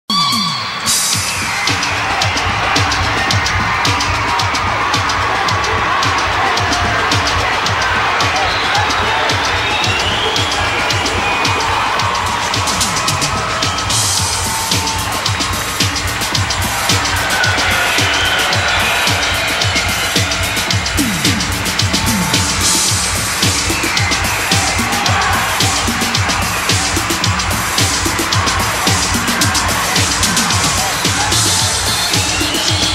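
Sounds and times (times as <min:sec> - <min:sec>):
audience cheering and shouting: 0:00.1 - 0:32.9
live pop band music: 0:00.1 - 0:32.9.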